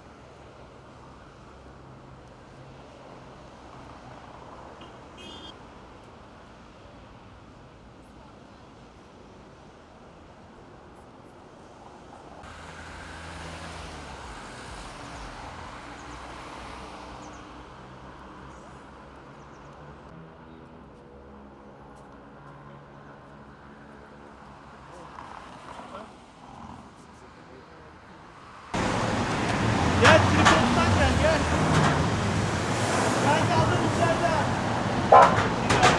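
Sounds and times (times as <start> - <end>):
passing vehicles engine and tyre noise: 0.0 - 35.9
rumbling road traffic: 0.0 - 35.9.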